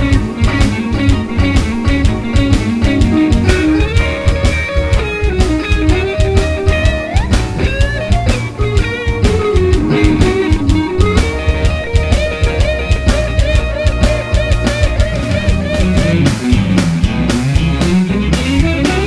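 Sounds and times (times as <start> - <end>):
bass guitar: 0.0 - 19.0
drums: 0.0 - 19.0
electric guitar blues lead: 0.0 - 19.0.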